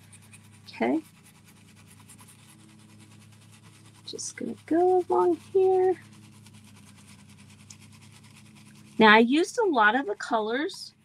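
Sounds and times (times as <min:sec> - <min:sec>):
paint brush scrubbing: 0:00.0 - 0:11.0.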